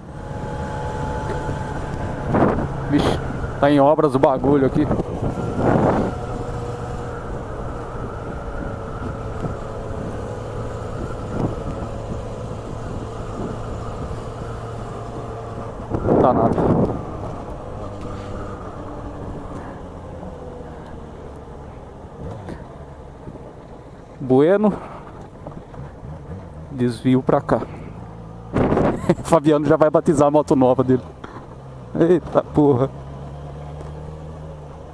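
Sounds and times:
motorcycle engine cruising: 0.0s - 34.9s
wind on microphone: 1.4s - 3.5s, 4.8s - 18.6s.

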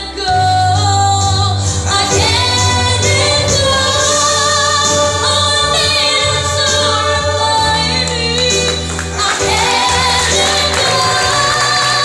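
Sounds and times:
girl singing a ballad: 0.0s - 12.0s.

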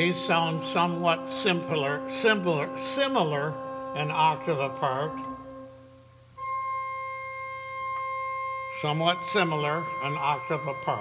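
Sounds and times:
pipe organ held note: 0.0s - 11.0s.

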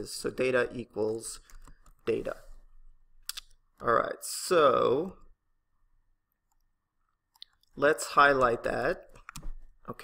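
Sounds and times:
person speaking: 0.0s - 5.4s, 7.3s - 10.0s.

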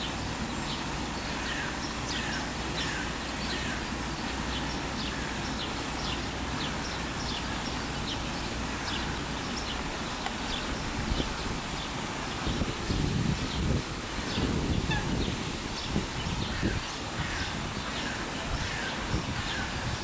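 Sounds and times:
low rumbling noise: 0.0s - 20.0s.

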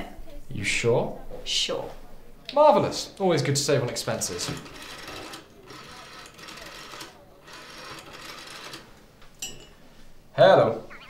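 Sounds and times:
rotary phone dial whirring clicks: 4.0s - 9.1s.

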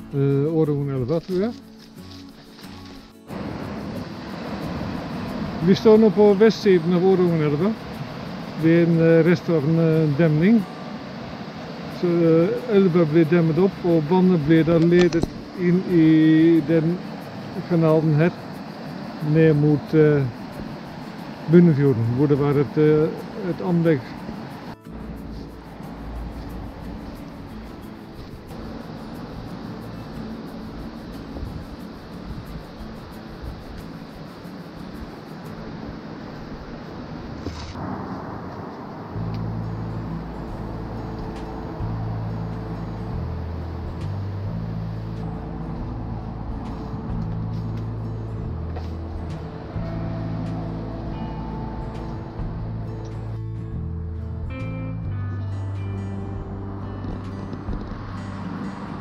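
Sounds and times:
steady rushing noise: 0.8s - 53.7s, 56.4s - 59.0s.

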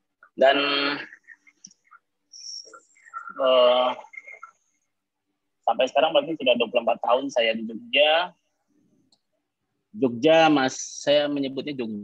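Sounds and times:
man speaking: 0.2s - 4.8s, 5.6s - 8.5s, 9.9s - 12.0s.

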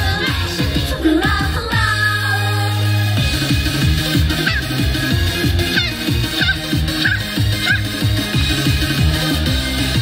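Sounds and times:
pop music with electronic dance beat: 0.0s - 10.0s.

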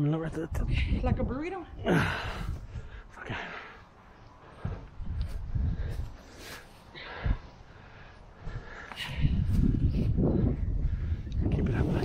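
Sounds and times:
person breathing hard: 1.9s - 11.3s
low rumbling on microphone: 4.6s - 6.2s, 7.0s - 12.0s.

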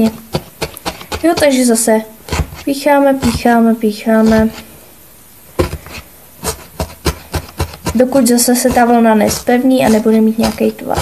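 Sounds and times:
felting needle stabbing foam pad: 0.0s - 4.7s, 5.6s - 11.0s.

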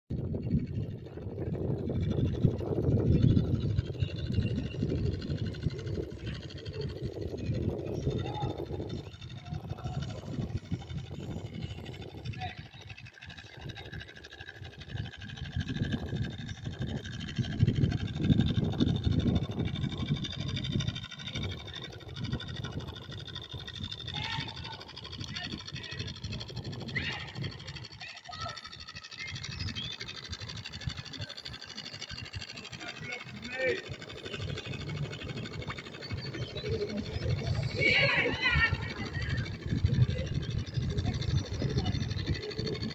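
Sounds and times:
wind buffeting microphone: 0.1s - 42.9s.

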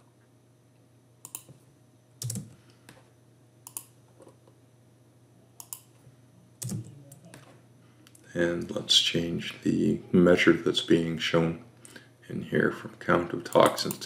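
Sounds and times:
faint steady hum: 0.0s - 14.0s
keyboard keystrokes: 2.2s - 2.5s, 6.6s - 7.5s.

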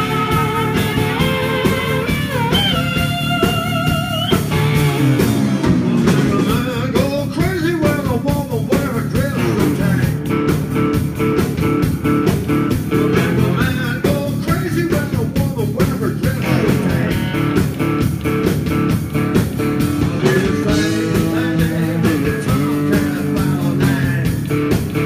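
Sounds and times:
harmonica wavering notes: 0.0s - 6.6s
electric guitar lines bending: 0.0s - 7.4s, 8.3s - 25.0s
blues band playing: 0.0s - 25.0s.

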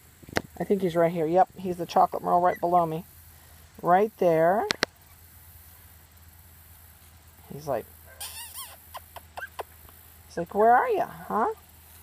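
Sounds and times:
puppy whining: 8.1s - 9.6s
puppy squeaks: 8.1s - 9.7s.

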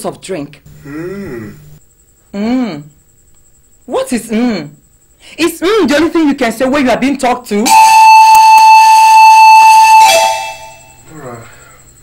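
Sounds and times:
horn-like music sting: 7.7s - 11.0s.

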